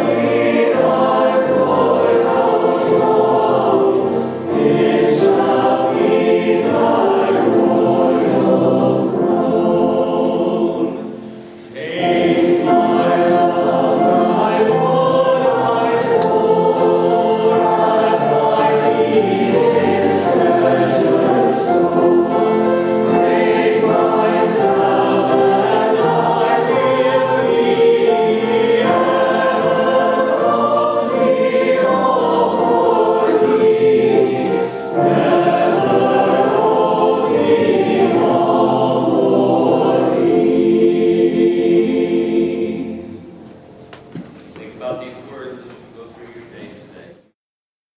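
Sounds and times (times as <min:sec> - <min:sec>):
choir of young voices singing: 0:00.0 - 0:43.7.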